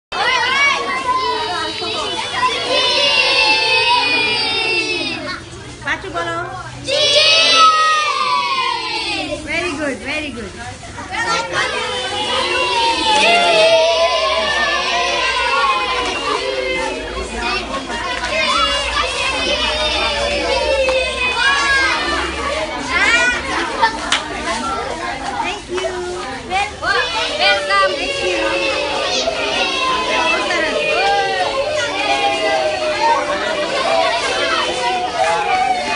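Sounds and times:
children shouting excitedly: 0.1 - 5.7, 6.8 - 9.5, 11.0 - 35.9.

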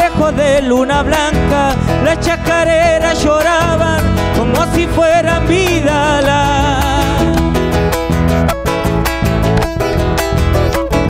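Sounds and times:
bass guitar: 0.0 - 11.0
electric guitar: 0.0 - 11.0
strummed acoustic guitar: 0.0 - 11.0.

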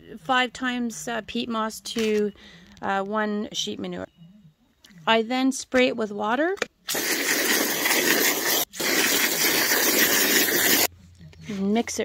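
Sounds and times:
hose water spraying hiss: 6.9 - 10.9.

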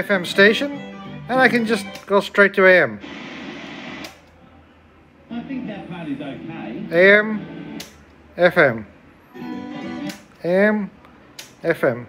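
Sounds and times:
tuner output hiss: 3.0 - 4.2
sharp click: 4.0 - 4.4, 7.8 - 8.0, 11.4 - 11.6.

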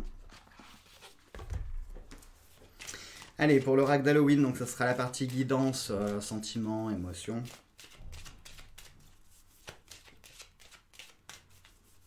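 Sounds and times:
cards being shuffled: 0.2 - 12.0.

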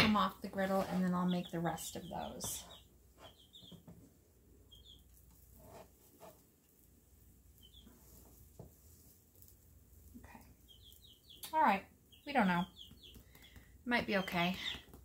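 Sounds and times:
faint bird chirps: 4.7 - 5.1.

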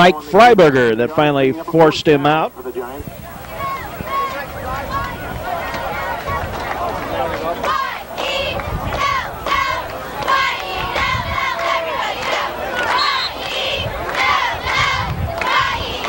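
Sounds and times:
football crowd shouting: 0.0 - 16.0.

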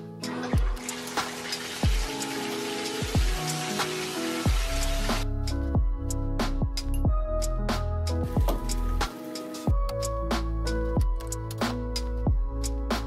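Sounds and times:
water pouring from bathtub spout: 0.3 - 5.2
music with bass-drum kicks: 0.6 - 13.0.

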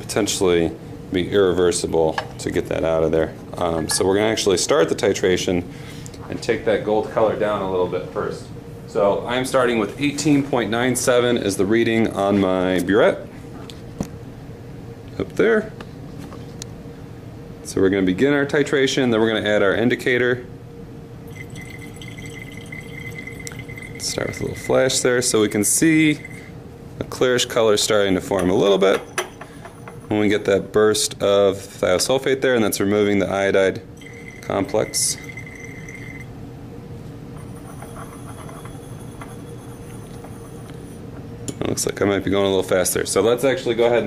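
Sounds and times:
steady low hum: 0.0 - 44.0
liquid trickling into flask: 21.3 - 24.3, 34.0 - 36.3.

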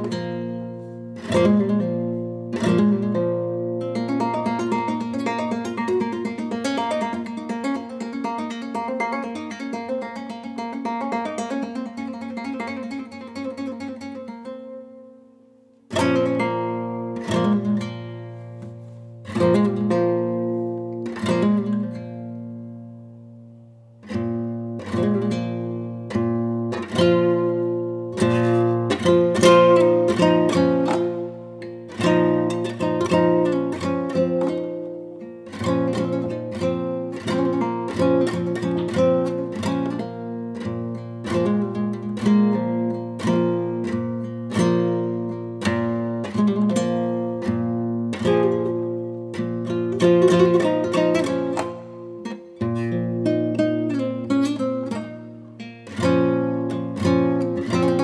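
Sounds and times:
classical guitar playing: 0.0 - 58.0.

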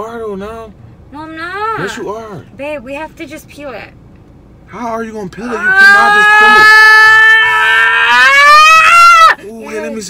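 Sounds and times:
woman screaming: 5.5 - 9.4.

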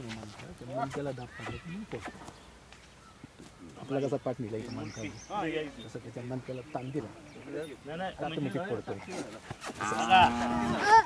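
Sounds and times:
calf bellowing: 9.8 - 11.0.

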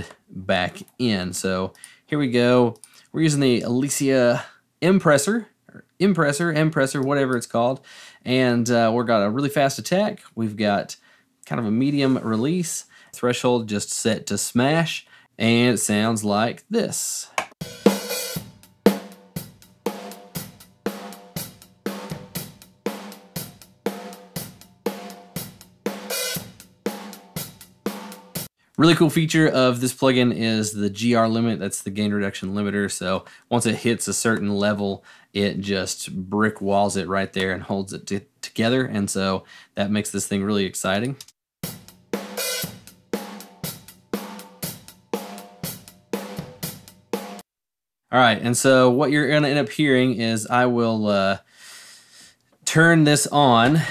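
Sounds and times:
compressed drum kit playing: 17.4 - 28.5, 41.6 - 47.4
hi-hat and cymbals: 17.6 - 28.5, 41.6 - 47.4.

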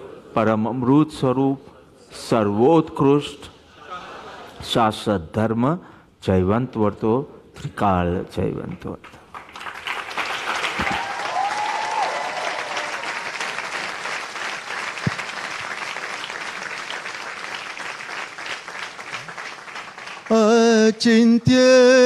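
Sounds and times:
audience applauding: 9.3 - 20.6.

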